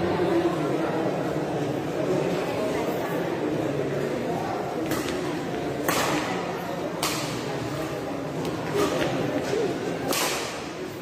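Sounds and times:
crowd chatter: 0.0 - 11.0
badminton racket hitting shuttlecock: 10.1 - 10.6.

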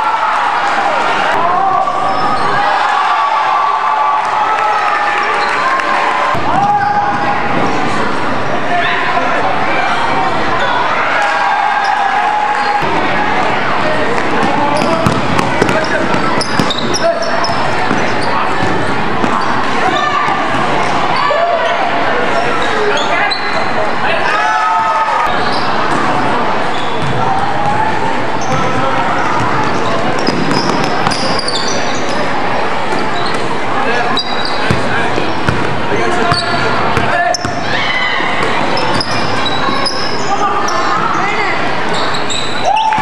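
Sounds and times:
echoing chatter and calls: 0.0 - 43.0
sneakers squeaking: 1.9 - 2.8, 5.2 - 8.5, 14.1 - 24.0, 24.7 - 43.0
basketball bouncing on hardwood floor: 15.0 - 15.8, 27.0 - 27.2.

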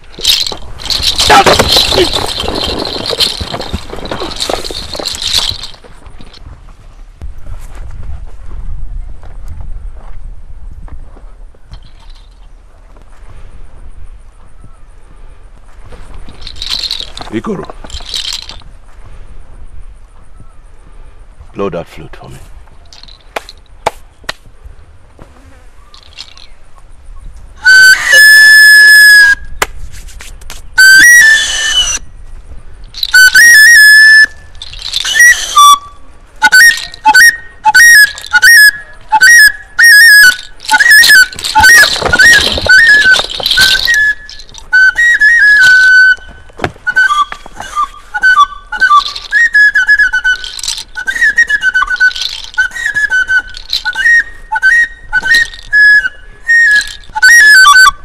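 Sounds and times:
flute playing high notes: 27.6 - 29.5, 30.8 - 32.0, 33.0 - 58.0.

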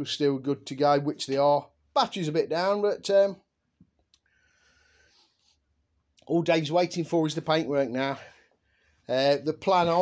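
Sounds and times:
faint breath drawn in: 4.2 - 5.7, 8.2 - 9.1.

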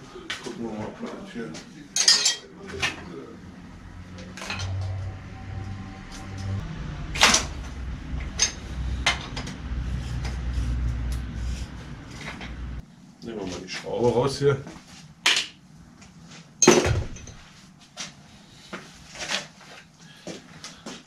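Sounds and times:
metal tools clinking: 2.0 - 3.0
low rumble: 3.2 - 12.8.

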